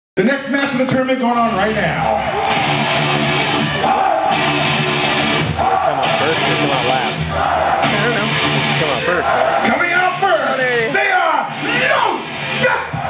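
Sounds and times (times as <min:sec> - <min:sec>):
loud rock music with electric guitar: 0:01.5 - 0:13.0.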